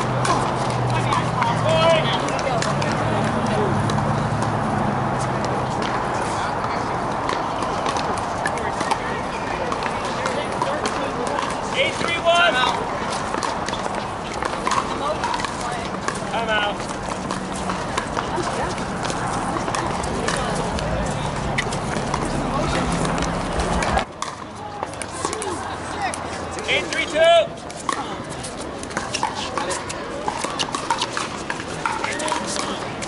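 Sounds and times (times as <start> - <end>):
murmur of voices: 0.0 - 33.0.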